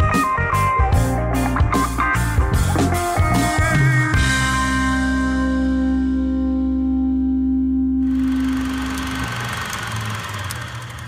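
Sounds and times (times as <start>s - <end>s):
rock band held chord: 0.2s - 7.2s.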